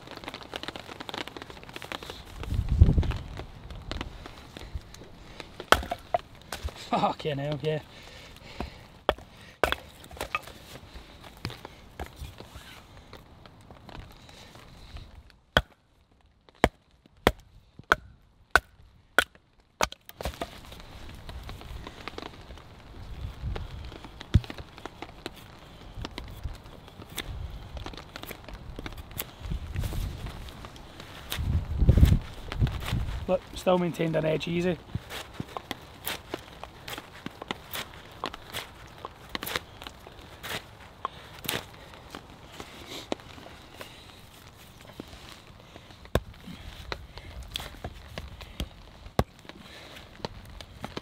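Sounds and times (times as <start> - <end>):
knife chopping wood: 5.7 - 6.2, 9.1 - 10.5, 16.6 - 20.5.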